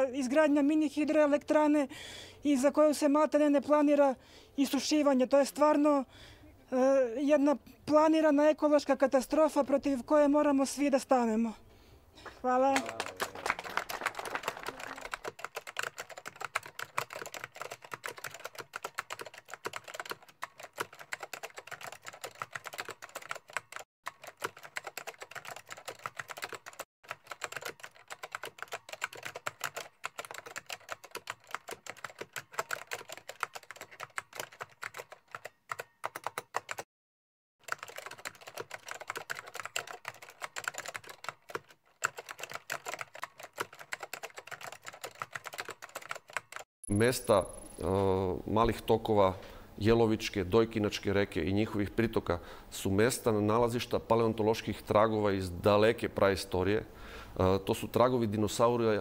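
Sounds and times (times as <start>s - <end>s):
keyboard typing clicks: 14.8s - 36.9s, 37.7s - 47.9s.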